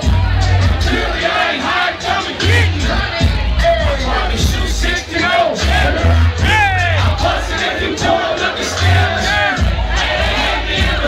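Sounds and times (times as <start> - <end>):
crowd shouting and cheering: 0.0 - 11.0
hip-hop music with heavy bass: 0.0 - 11.0.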